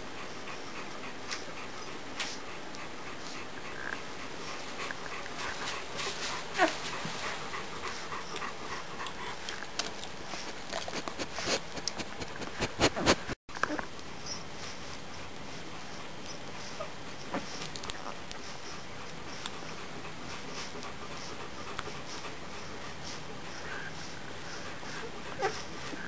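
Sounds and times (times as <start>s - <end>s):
puppies suckling: 0.2s - 26.0s
puppies suckling wet clicks: 7.9s - 13.9s, 17.4s - 19.6s.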